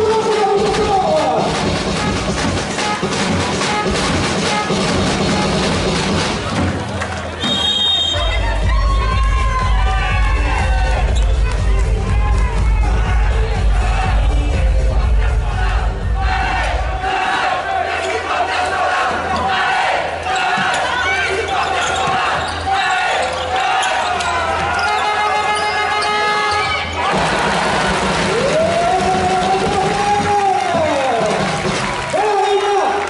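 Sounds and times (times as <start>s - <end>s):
crowd voices: 0.0s - 33.0s.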